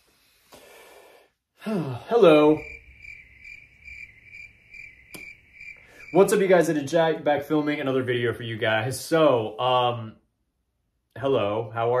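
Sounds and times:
insect chirping: 0:02.3 - 0:06.6.

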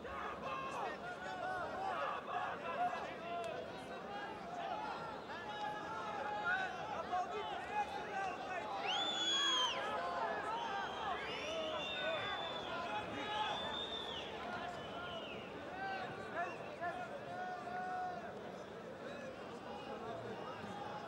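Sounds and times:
crowd shouting and chattering: 0:00.0 - 0:21.0
spectators whistling: 0:08.8 - 0:15.6.

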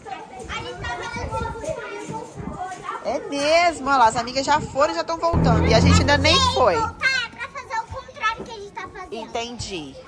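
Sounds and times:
children chattering and calling: 0:00.0 - 0:03.3
low knocks: 0:05.4 - 0:07.5.

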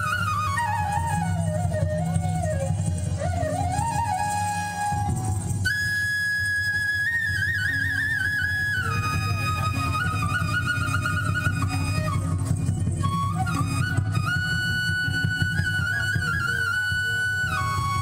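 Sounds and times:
steady low drum beat: 0:00.6 - 0:05.7.

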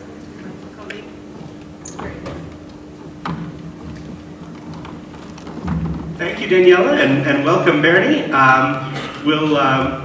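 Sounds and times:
steady low hum: 0:00.0 - 0:10.0
microphone handling rumble: 0:01.2 - 0:08.7.

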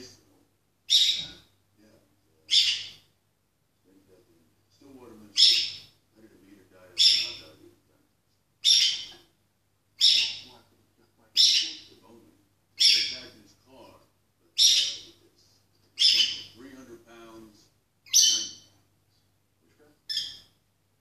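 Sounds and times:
faint tv dialogue: 0:00.0 - 0:03.0, 0:03.6 - 0:20.1
lovebird calling loudly: 0:00.9 - 0:01.5, 0:02.5 - 0:03.1, 0:05.3 - 0:06.0, 0:07.0 - 0:07.5, 0:08.6 - 0:09.3, 0:10.0 - 0:10.6, 0:11.3 - 0:12.0, 0:12.8 - 0:13.4, 0:14.6 - 0:15.2, 0:16.0 - 0:16.6, 0:18.0 - 0:18.8, 0:20.1 - 0:20.6.

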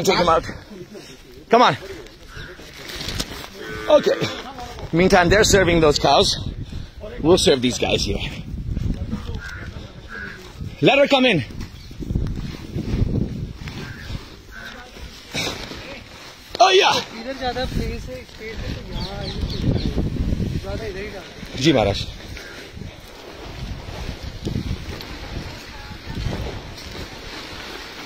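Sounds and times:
cow mooing: 0:03.6 - 0:04.4.

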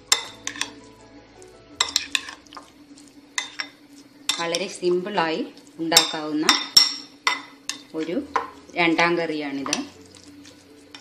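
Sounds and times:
spoon stirring thick mixture: 0:00.0 - 0:11.0
spoon clinking against glass bowl: 0:00.1 - 0:00.8, 0:06.0 - 0:08.5.

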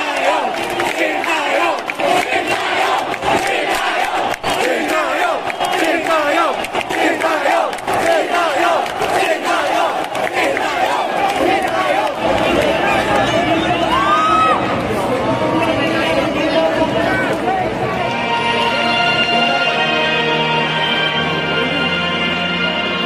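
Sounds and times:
crowd shouting and cheering: 0:00.0 - 0:21.8.

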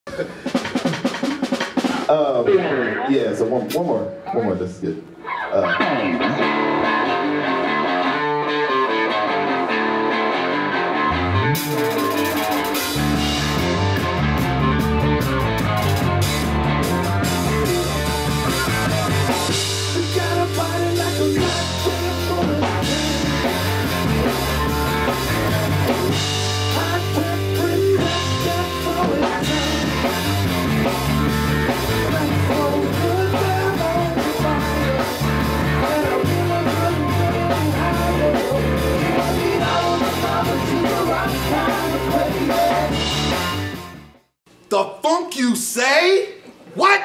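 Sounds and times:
band music: 0:00.1 - 0:03.9, 0:04.8 - 0:47.0
fast snare drum roll: 0:00.5 - 0:02.2.

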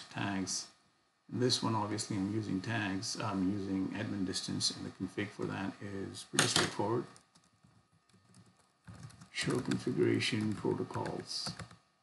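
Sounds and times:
faint keyboard keystrokes: 0:06.4 - 0:11.8.

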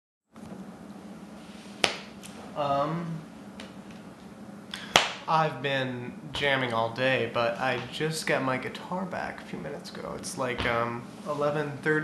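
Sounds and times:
low room hum: 0:00.4 - 0:12.0.

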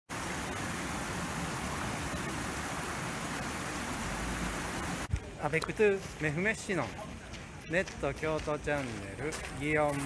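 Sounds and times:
shallow water flowing: 0:00.1 - 0:05.2.

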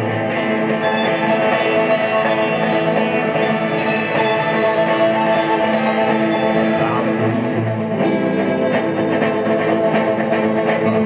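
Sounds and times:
strummed electric guitars: 0:00.0 - 0:11.0.

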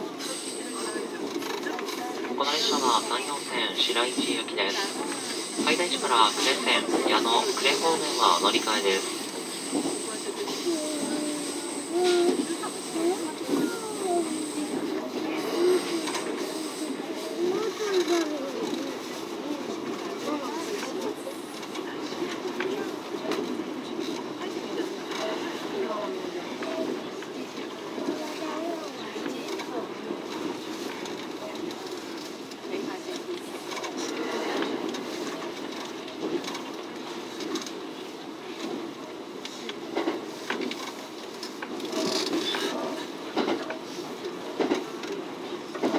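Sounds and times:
train wheels rumbling on rails: 0:00.0 - 0:45.9.

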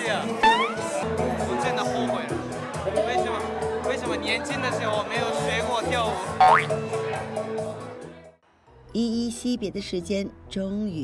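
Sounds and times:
rising slide-whistle boing: 0:00.4 - 0:01.0.

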